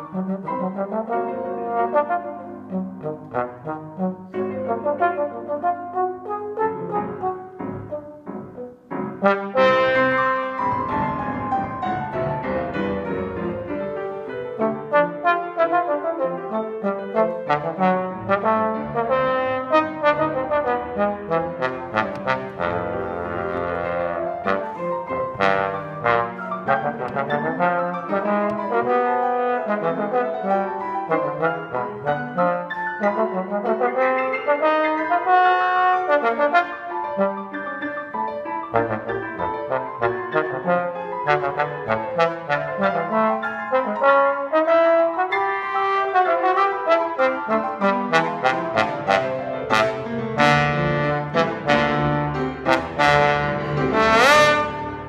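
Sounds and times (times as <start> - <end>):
piano notes: 0.0 - 55.0
trombone melody: 0.0 - 55.0.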